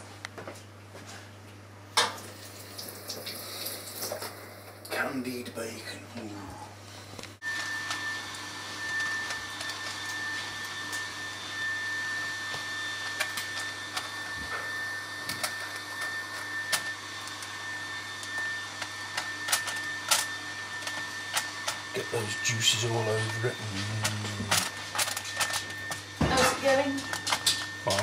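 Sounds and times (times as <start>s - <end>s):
bacon sizzling and popping: 2.0s - 4.4s, 12.2s - 21.8s
faint high whine: 7.4s - 28.0s.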